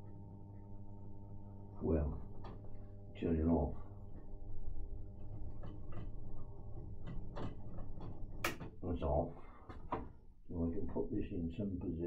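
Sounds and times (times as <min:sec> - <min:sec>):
tape recorder humming: 0:00.0 - 0:08.6
clicks and knocks of controls: 0:07.0 - 0:08.8.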